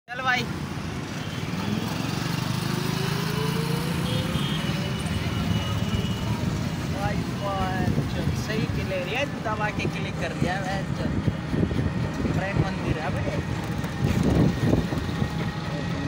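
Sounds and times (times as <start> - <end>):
road noise: 0.1 - 16.0.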